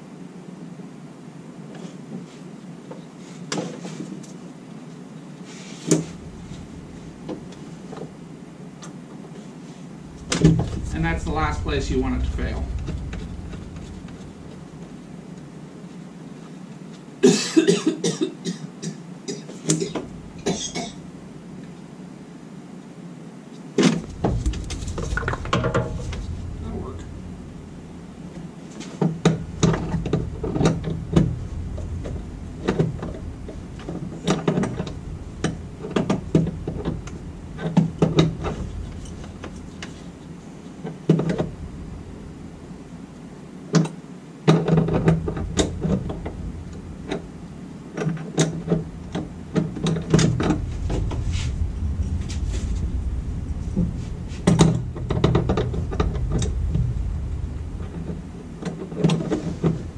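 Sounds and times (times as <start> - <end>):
low rumble: 6.0 - 8.7, 9.7 - 16.7, 20.0 - 21.7, 24.0 - 43.7, 44.6 - 59.9.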